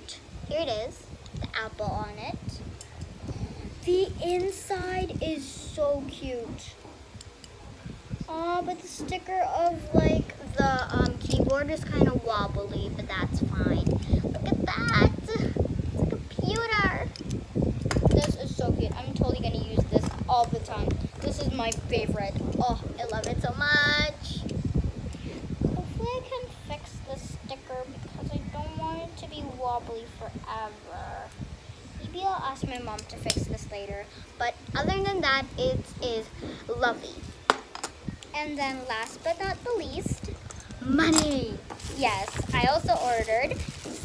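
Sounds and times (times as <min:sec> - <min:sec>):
plastic packaging rustling: 0:41.7 - 0:44.0.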